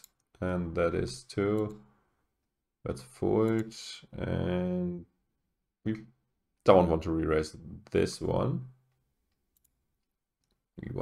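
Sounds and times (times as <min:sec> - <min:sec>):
man speaking: 0:00.4 - 0:01.9, 0:02.8 - 0:05.2, 0:05.8 - 0:08.8, 0:10.8 - 0:11.0.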